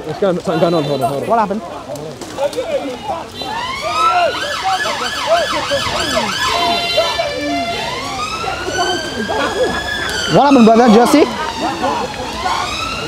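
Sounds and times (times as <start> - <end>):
emergency vehicle siren: 2.8 - 13.0.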